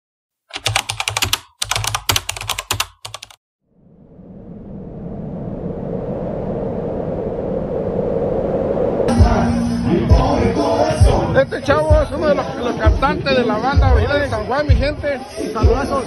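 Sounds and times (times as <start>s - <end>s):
rapid clicking bursts: 0.5s - 3.4s.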